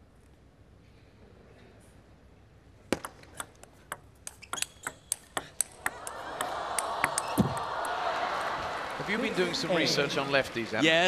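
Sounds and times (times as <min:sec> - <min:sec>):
table tennis ball clicking: 0:03.0 - 0:07.7
crowd cheering: 0:05.7 - 0:11.0
crowd clapping: 0:05.7 - 0:11.0.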